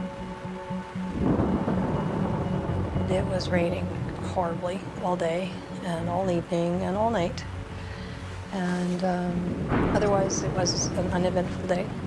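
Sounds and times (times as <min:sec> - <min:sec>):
sustained background music: 0:00.0 - 0:12.0
low rumble of thunder: 0:01.1 - 0:12.0.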